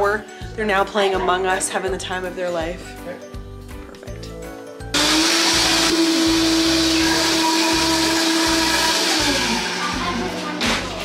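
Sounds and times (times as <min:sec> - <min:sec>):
electric motor whirring: 0:05.0 - 0:10.4.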